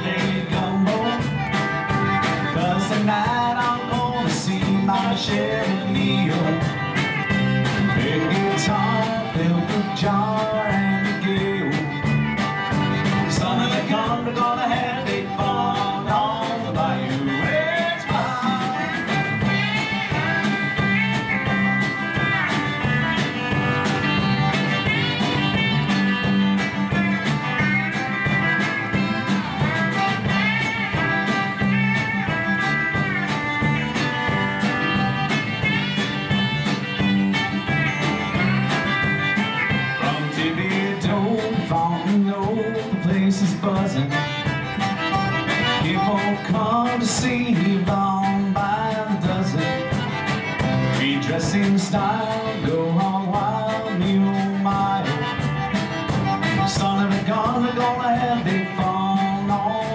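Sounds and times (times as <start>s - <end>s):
bass: 0.0s - 59.9s
drum beat: 0.0s - 59.9s
pedal steel guitar: 0.0s - 59.9s
strummed guitar: 0.0s - 59.9s.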